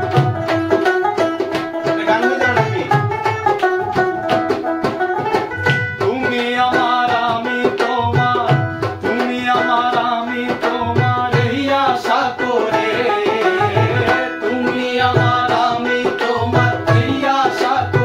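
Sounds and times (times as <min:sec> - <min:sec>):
banjo strummed: 0:00.0 - 0:18.0
hand drum: 0:00.0 - 0:18.0
person singing: 0:06.0 - 0:18.0.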